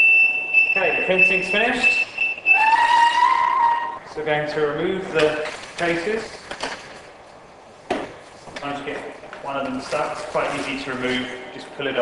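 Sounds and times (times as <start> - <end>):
short high beeps: 0.0 - 2.8.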